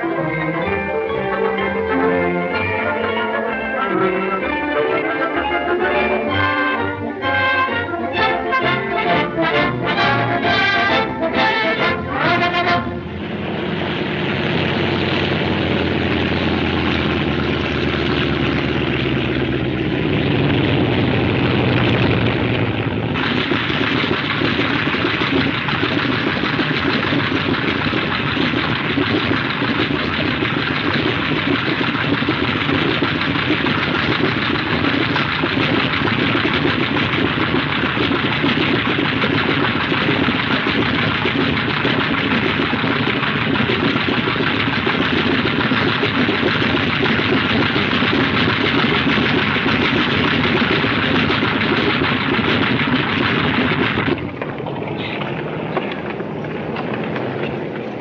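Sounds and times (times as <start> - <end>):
propeller engines roaring: 0.0 - 58.0.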